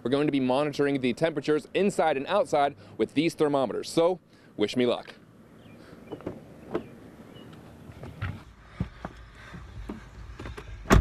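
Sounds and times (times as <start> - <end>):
knocks and rustling: 6.1 - 6.9, 7.9 - 11.0
car door shutting: 6.1 - 7.0, 10.4 - 11.0.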